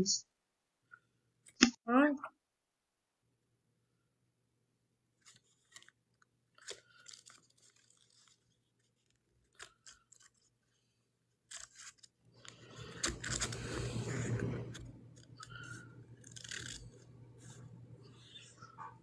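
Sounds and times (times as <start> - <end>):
crackling and crunching: 5.2 - 17.6.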